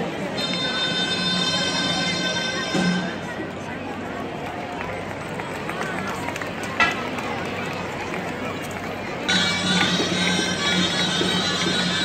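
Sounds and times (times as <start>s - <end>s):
crowd murmuring: 0.0s - 12.0s.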